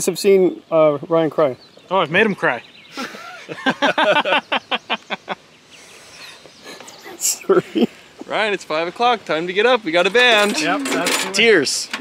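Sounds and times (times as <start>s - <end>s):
people laughing: 2.9s - 5.5s, 6.6s - 8.0s.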